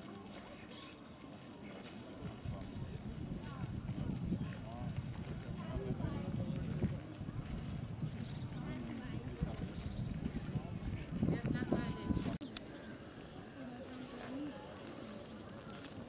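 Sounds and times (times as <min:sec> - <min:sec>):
distant people talking: 0:00.0 - 0:16.0
small birds chirping: 0:03.6 - 0:12.9.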